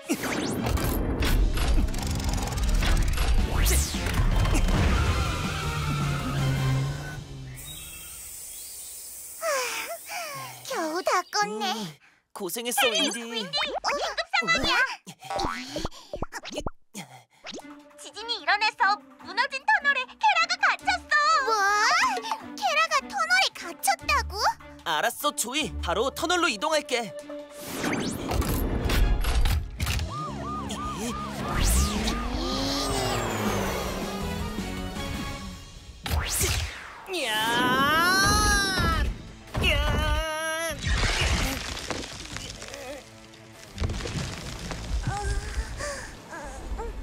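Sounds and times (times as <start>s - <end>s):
background music: 0.1s - 7.7s, 17.6s - 45.2s
engine revving: 2.1s - 8.1s, 30.0s - 35.8s
wailing siren: 30.0s - 34.4s.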